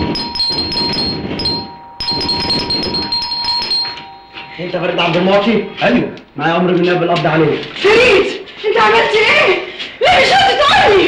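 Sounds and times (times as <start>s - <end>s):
electronic musical doorbell ringing: 0.0s - 5.8s.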